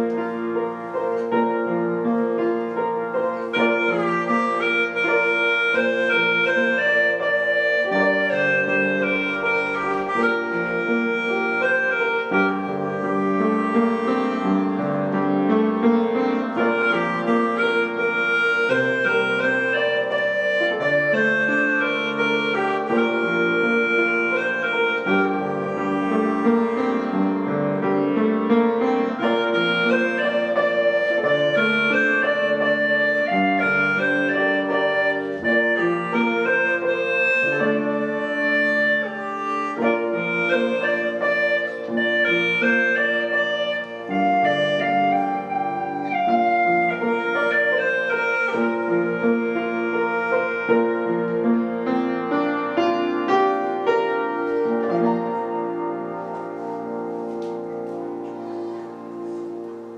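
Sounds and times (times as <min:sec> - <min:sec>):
gourd flute melody: 0:00.0 - 0:59.9.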